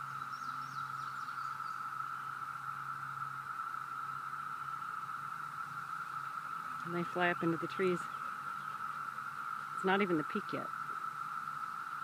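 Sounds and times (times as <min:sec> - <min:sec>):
cicadas droning: 0:00.0 - 0:12.0.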